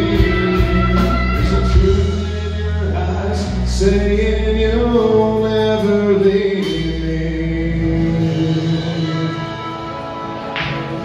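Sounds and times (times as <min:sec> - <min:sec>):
live country band playing: 0:00.0 - 0:11.0.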